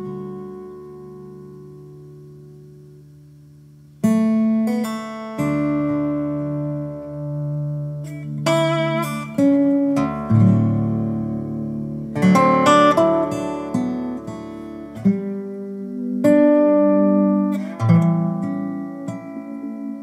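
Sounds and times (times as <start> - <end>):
resonator guitar playing: 0.0 - 20.0.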